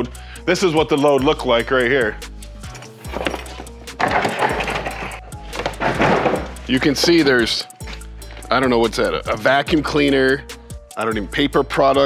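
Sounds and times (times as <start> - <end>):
background music: 0.0 - 12.0
plastic pallet scraping on cardboard: 3.1 - 7.3.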